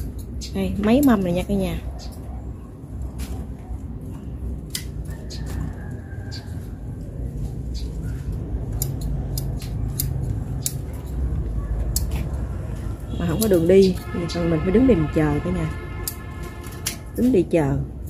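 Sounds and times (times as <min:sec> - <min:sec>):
low steady rumble: 0:00.0 - 0:18.0
snips and clicks of cutting stalks: 0:04.6 - 0:05.7, 0:08.0 - 0:12.5, 0:15.9 - 0:17.4.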